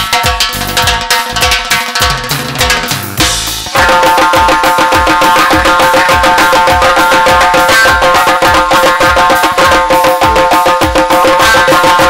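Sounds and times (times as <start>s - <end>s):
frame drums beaten fast: 0.0s - 12.0s
steady low beat: 0.0s - 12.0s
held melody notes: 2.9s - 12.0s.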